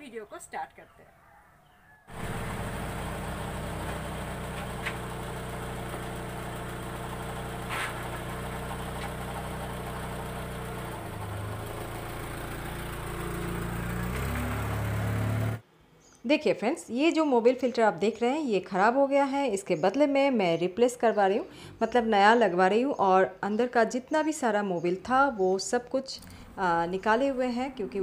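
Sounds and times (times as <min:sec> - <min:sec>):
car engine idling: 0:02.1 - 0:15.6.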